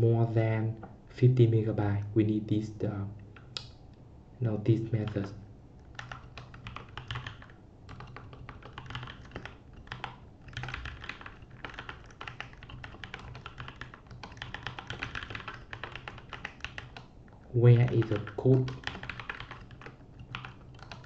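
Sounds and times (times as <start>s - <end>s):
typing on computer keyboard: 5.0s - 21.0s.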